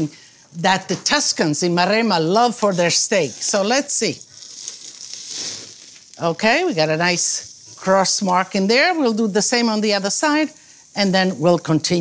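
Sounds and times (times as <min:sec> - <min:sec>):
steak sizzling on a grill: 0:00.0 - 0:12.0.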